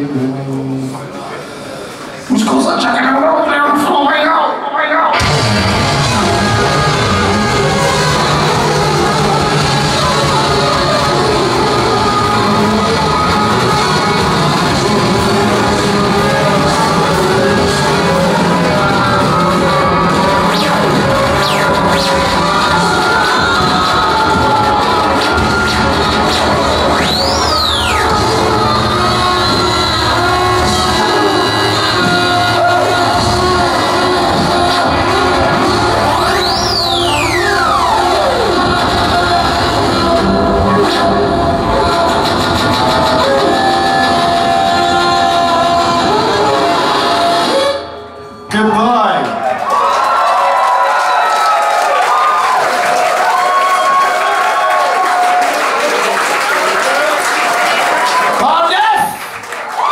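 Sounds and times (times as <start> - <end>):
rock band with horns: 2.0 - 59.9.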